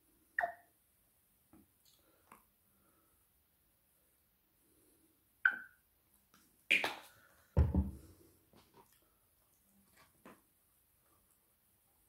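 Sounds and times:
bottle knocking on table: 7.6s - 8.0s
heavy thud: 7.6s - 8.1s.

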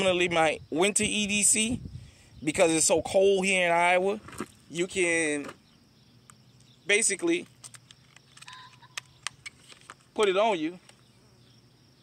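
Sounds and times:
pistol and holster clicks: 7.4s - 10.0s.

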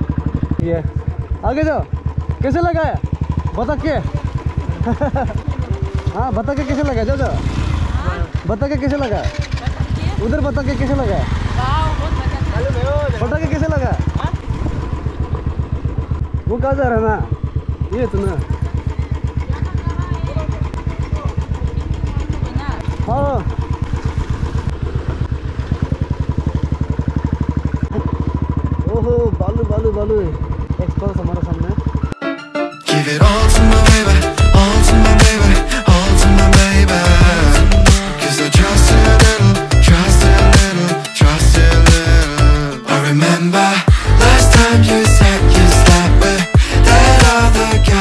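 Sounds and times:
motorcycle engine idling: 0.0s - 32.2s, 33.2s - 42.9s, 43.8s - 48.0s.

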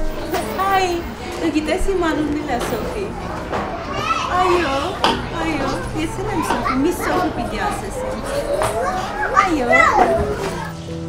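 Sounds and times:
woman talking: 0.0s - 3.2s, 4.3s - 10.3s
toddler chattering: 1.6s - 10.8s.

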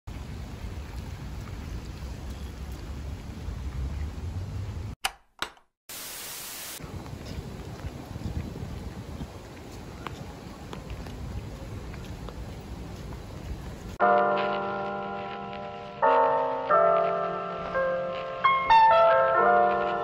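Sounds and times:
steady rain: 0.1s - 4.5s, 5.9s - 14.0s
loud static hiss: 5.9s - 6.9s.

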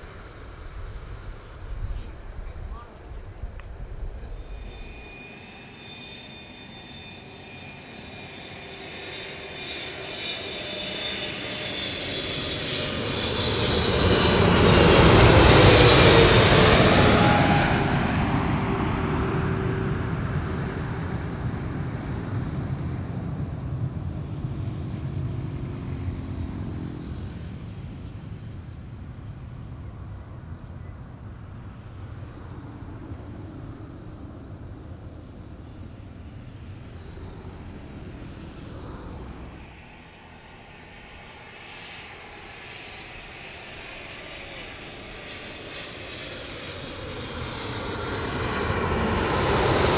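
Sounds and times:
low jet rumble: 0.0s - 49.9s
jet engines whining: 2.0s - 49.9s.

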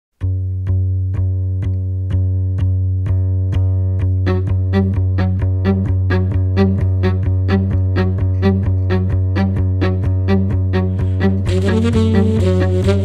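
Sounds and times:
low held cello note: 4.2s - 13.0s.

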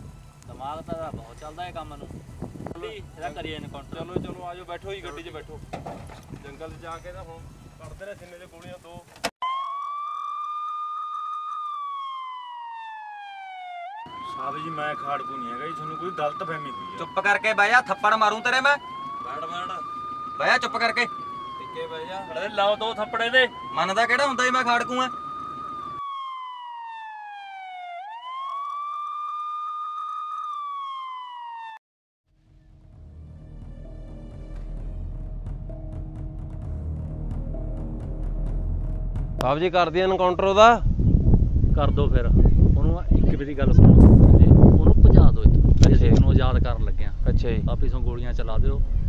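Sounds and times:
police siren wailing: 0.0s - 5.6s, 9.4s - 31.8s.

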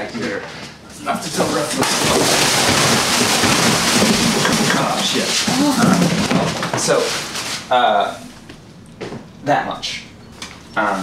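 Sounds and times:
plastic bags rustling and crinkling: 1.2s - 8.2s.

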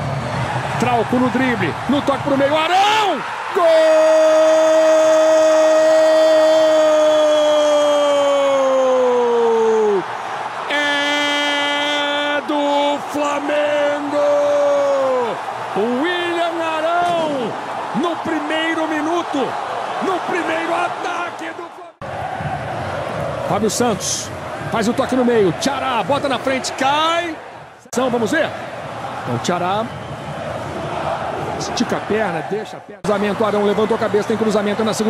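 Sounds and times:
stadium crowd noise: 0.0s - 35.0s
fast excited commentary: 0.7s - 6.1s, 10.7s - 22.0s, 23.4s - 28.6s, 29.2s - 29.9s, 31.6s - 35.0s.

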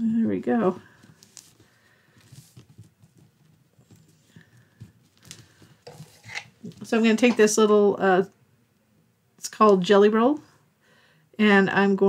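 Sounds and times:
paper rustling: 0.8s - 6.9s.

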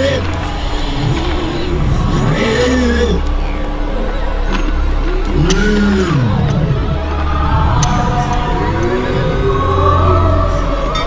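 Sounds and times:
deep bass drone: 0.0s - 11.0s
swooping wailing sound: 0.0s - 11.0s.

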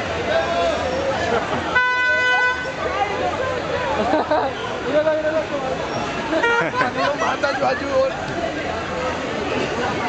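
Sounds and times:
crowd talking: 0.0s - 10.0s
car horn toot: 1.8s - 2.8s, 6.4s - 6.8s.

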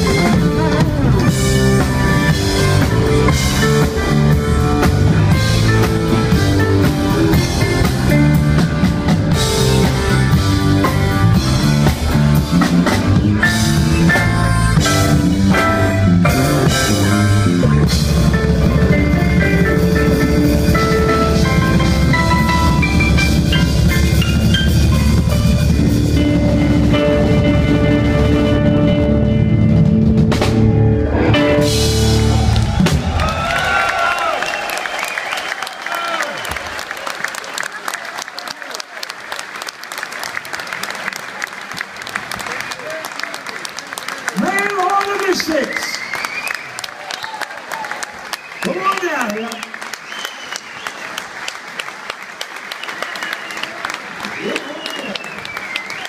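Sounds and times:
keyboard: 0.0s - 33.0s
bass guitar: 0.0s - 33.9s
drum kit: 0.0s - 34.3s
harmonica: 14.1s - 15.3s
audience applauding and cheering: 30.2s - 56.0s.

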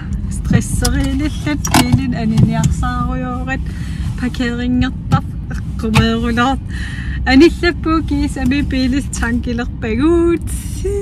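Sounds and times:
car engine and road noise: 0.0s - 11.0s
people talking: 0.3s - 3.6s, 4.2s - 6.7s, 7.3s - 11.0s.

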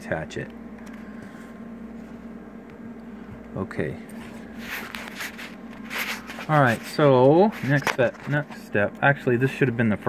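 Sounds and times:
steady low hum: 0.0s - 10.0s
camera handling rubbing and scraping: 4.5s - 8.6s.

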